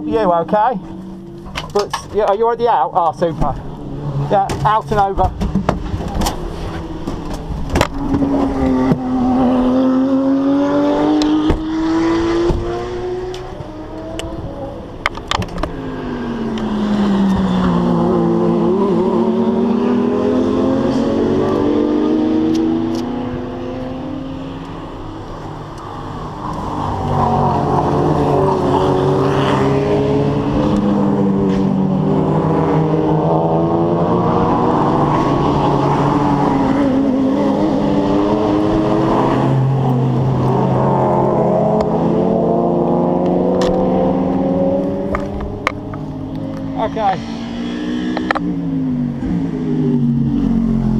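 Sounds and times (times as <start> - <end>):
race cars passing with engines revving: 0.0 - 50.9.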